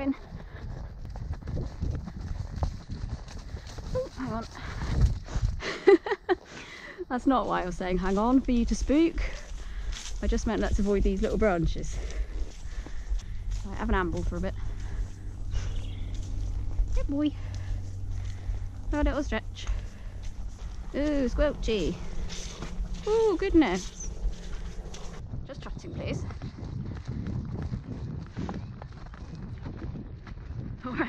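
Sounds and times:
wind rumble on microphone: 0.0s - 6.3s, 7.2s - 31.0s
hooves on grass: 0.0s - 31.0s.

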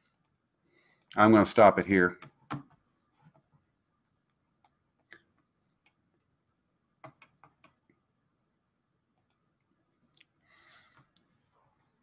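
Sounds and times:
faint clicks: 9.2s - 9.4s.

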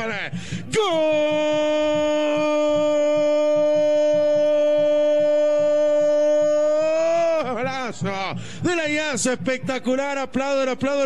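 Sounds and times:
man shouting goal cry: 0.7s - 8.1s.

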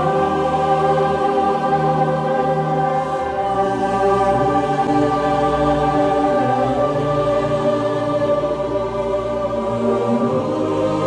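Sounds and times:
choir singing sustained chords: 0.0s - 11.0s.

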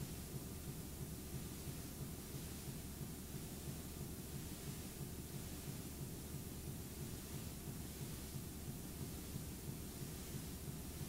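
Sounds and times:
steady tape hiss: 0.0s - 11.0s.

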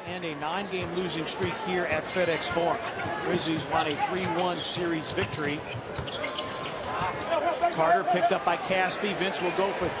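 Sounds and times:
man commentating: 7.4s - 10.0s.

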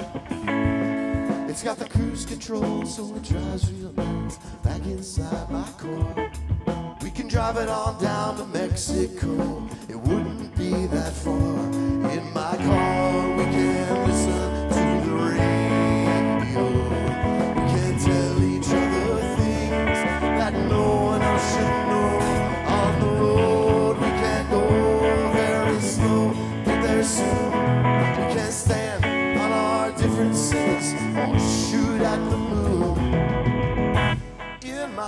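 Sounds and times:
live band playing blues rock: 0.0s - 35.0s.

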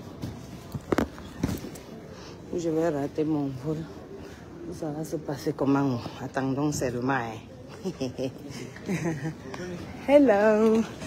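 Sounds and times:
low background noise: 0.0s - 11.0s.

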